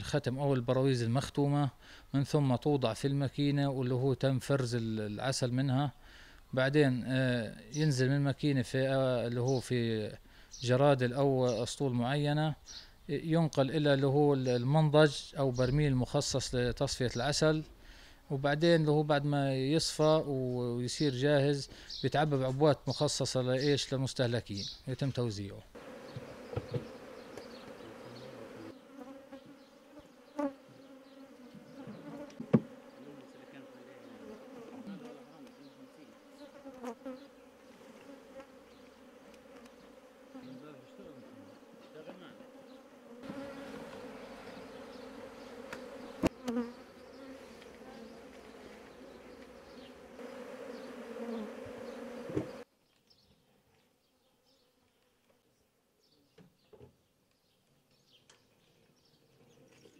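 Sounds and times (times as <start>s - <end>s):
honeybees buzzing: 25.7s - 52.7s.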